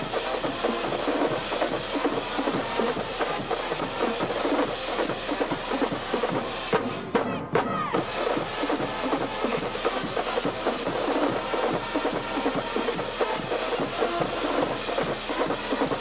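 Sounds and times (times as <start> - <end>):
snare drums beat: 0.0 - 16.0.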